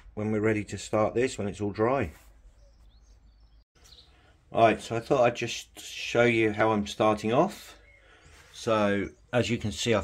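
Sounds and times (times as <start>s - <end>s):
faint high bird chirps: 2.3s - 4.3s, 7.7s - 9.8s.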